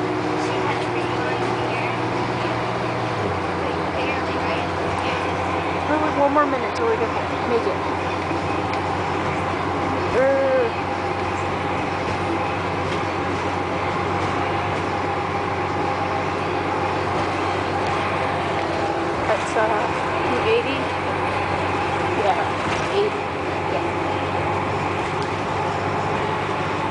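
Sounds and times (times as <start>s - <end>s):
bus engine and road noise: 0.0s - 26.9s.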